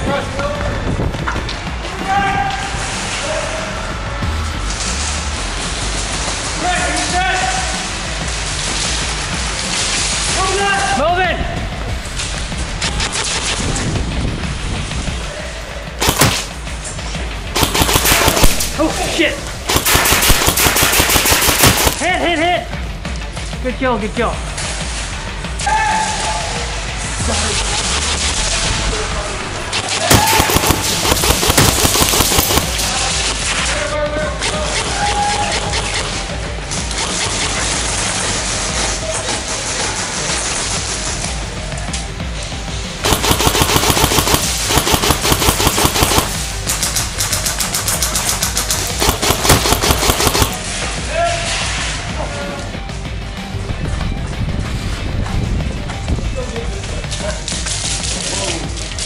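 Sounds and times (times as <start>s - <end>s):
airsoft rifle firing bursts: 16.0s - 16.6s, 17.6s - 18.8s, 19.7s - 22.1s, 29.8s - 33.3s, 37.0s - 38.3s, 43.0s - 50.7s.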